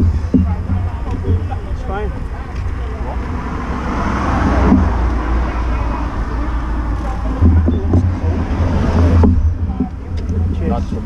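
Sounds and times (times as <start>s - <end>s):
low traffic rumble: 0.0s - 11.0s
motor vehicle passing: 0.0s - 11.0s.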